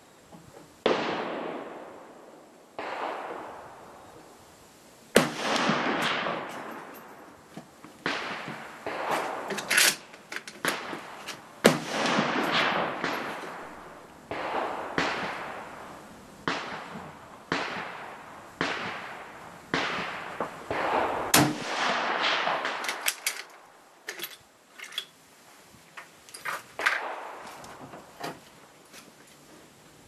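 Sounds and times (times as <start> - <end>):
rifle shots echoing: 0.8 - 3.9, 5.2 - 7.3, 8.0 - 23.6, 26.8 - 27.8.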